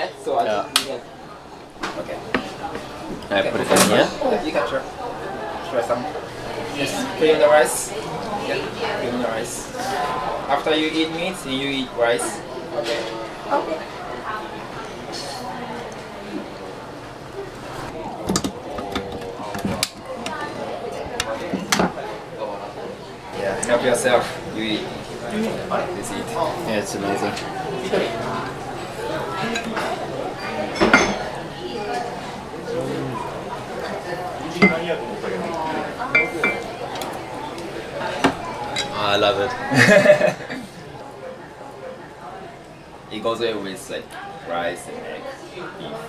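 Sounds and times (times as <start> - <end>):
low voices: 0.6 - 43.1
chopsticks clinking against bowls: 36.1 - 36.7.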